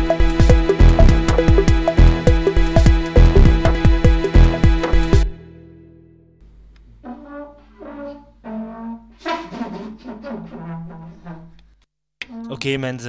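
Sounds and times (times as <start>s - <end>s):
trumpet playing: 0.0s - 5.6s, 7.0s - 11.7s.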